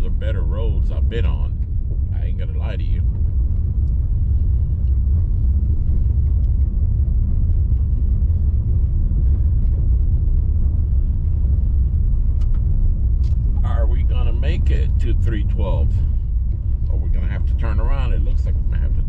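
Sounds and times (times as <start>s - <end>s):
car engine running: 0.0s - 19.0s
tyres rumbling on dirt road: 0.0s - 19.0s.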